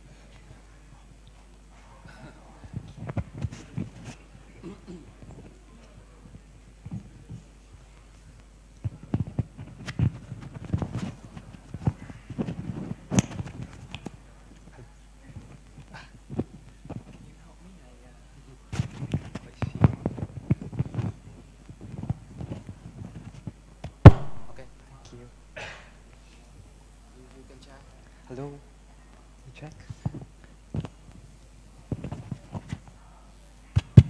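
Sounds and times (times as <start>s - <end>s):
microphone handling noise: 8.8s - 14.2s, 18.7s - 24.7s, 30.0s - 32.9s, 33.8s - 34.0s
sharp loud click: 24.1s - 24.6s.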